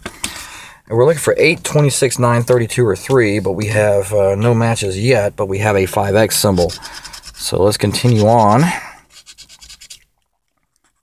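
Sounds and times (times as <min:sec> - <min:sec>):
coin scratching lottery ticket: 0:06.4 - 0:10.0.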